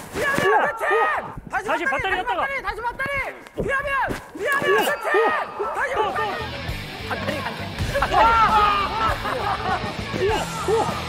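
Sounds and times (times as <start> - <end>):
people shouting excitedly: 0.2 - 2.2, 3.1 - 11.0
background music: 4.7 - 11.0.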